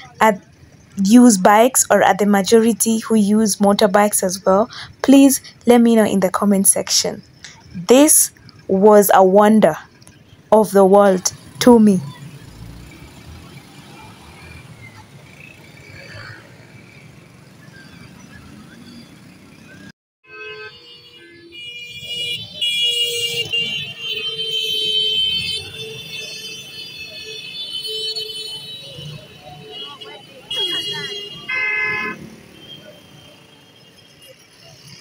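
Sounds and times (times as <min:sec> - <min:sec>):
motorbikes in street traffic: 0:00.0 - 0:35.0
horns blasting: 0:20.2 - 0:34.2.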